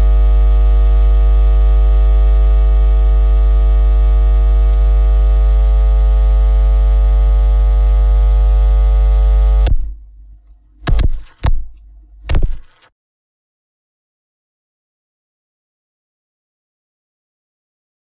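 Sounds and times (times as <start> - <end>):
loud buzzy electrical hum: 0.0 - 12.9.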